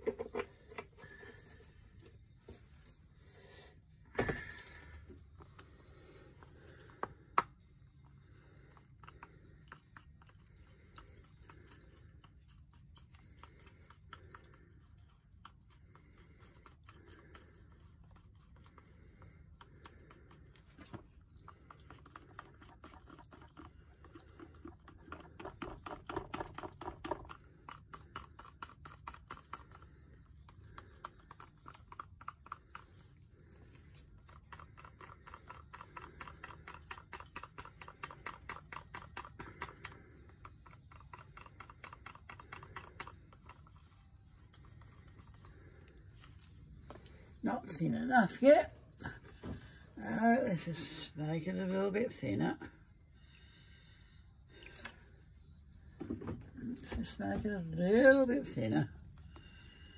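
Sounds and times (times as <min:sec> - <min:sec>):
paint stirred in a cup: 0:00.0 - 0:59.9.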